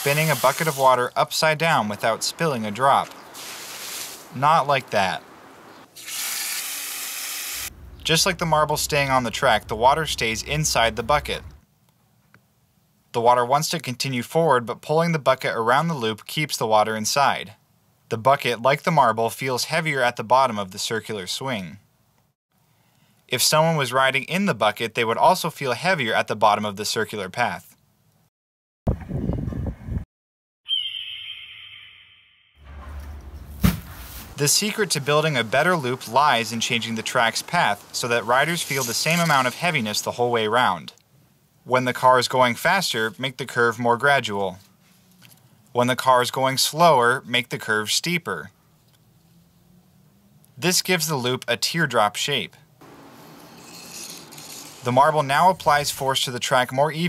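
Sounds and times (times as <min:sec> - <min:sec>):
faint low outdoor noise: 0:00.0 - 0:06.0, 0:07.6 - 0:28.3, 0:32.7 - 0:57.0
rumbling on camera microphone: 0:07.7 - 0:11.6
high clear ringing tone: 0:30.7 - 0:33.2
marble rolling on plastic track: 0:53.5 - 0:54.9.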